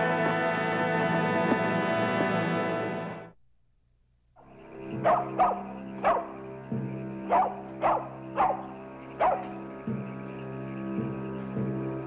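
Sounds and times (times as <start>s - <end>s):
background music: 0.0s - 3.4s, 4.4s - 12.0s
dog barking: 5.0s - 6.4s, 7.3s - 9.6s.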